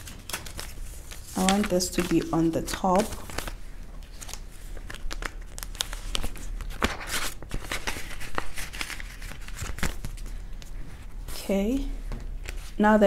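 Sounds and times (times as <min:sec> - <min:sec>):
plastic envelope and banknotes crinkling: 0:00.0 - 0:11.6.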